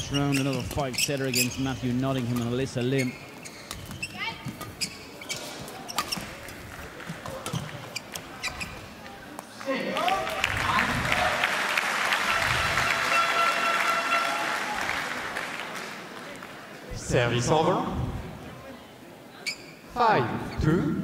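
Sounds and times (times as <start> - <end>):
applause: 9.6 - 16.6
crowd cheering and shouting: 9.9 - 15.2.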